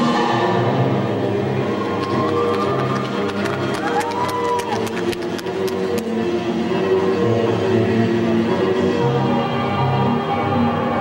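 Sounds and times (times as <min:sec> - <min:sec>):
crowd noise: 0:00.0 - 0:11.0
music over loudspeakers: 0:00.0 - 0:11.0.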